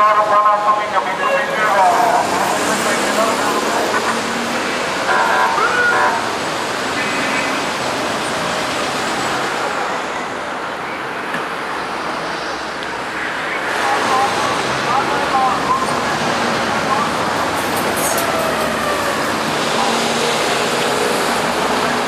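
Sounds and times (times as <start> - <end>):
crowd voices: 0.0 - 8.6, 9.5 - 22.0
street traffic: 0.0 - 22.0.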